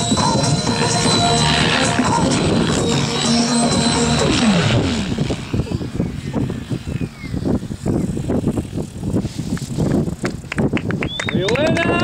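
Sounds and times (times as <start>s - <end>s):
music: 0.0s - 4.8s
falling pitch sweep: 0.0s - 8.2s
model helicopter rotor and engine: 0.0s - 11.9s
wind gusts on microphone: 0.0s - 12.0s.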